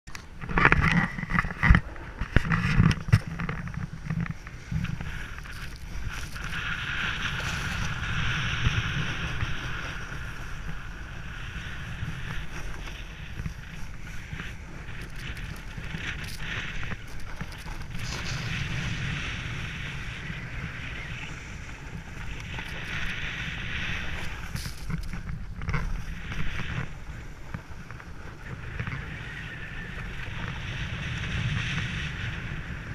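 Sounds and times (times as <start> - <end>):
wind buffeting microphone: 0.1 - 32.9
edges scraping on packed snow: 0.7 - 32.2.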